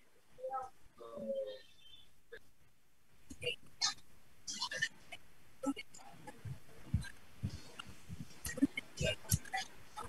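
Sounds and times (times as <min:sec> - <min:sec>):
faint broken speech over video call: 0:00.0 - 0:10.0.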